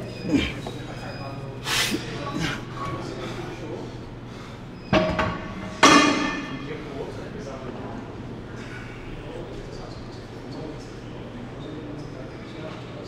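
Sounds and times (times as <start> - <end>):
metal gym equipment clanking: 4.9 - 6.8.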